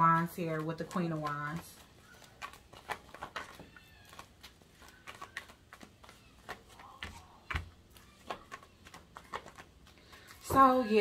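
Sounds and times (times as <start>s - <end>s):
cards being shuffled: 0.0s - 10.4s.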